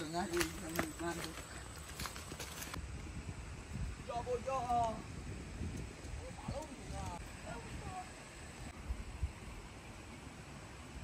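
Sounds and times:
wind rumbling on microphone: 0:01.6 - 0:11.0.

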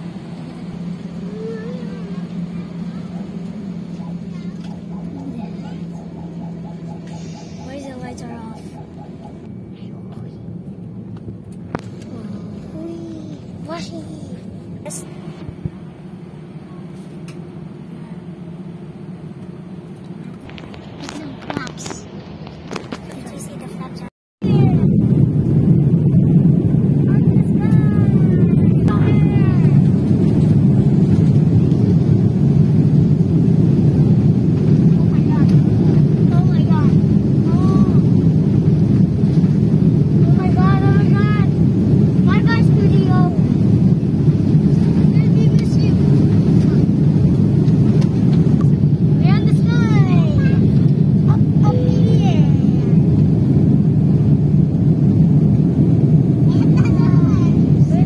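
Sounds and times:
airliner engine roar in cabin: 0:00.0 - 0:58.0.

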